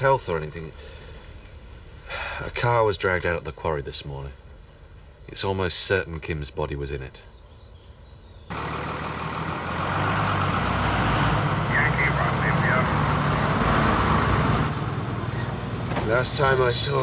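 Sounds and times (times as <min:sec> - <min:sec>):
lorry diesel engine running: 0:08.5 - 0:17.0.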